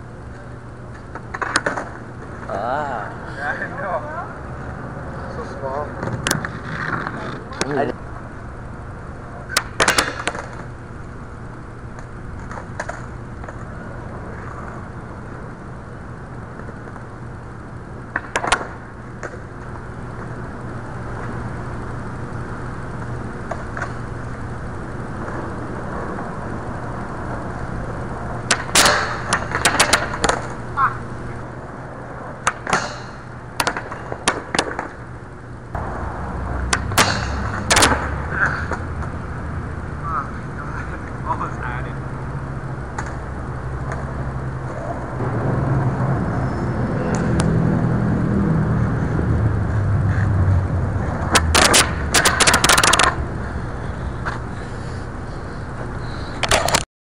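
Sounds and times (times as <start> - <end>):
skateboard wheels rolling on concrete: 0.0 - 56.8
skateboard clacking on concrete and metal: 9.5 - 10.6, 18.1 - 19.3, 28.5 - 30.5, 32.4 - 34.9, 51.3 - 53.2.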